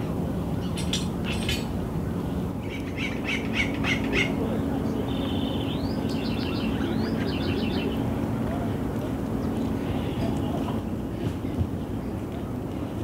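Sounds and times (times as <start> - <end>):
birds calling and chattering: 0.0 - 10.8
steady low hum: 0.0 - 13.0.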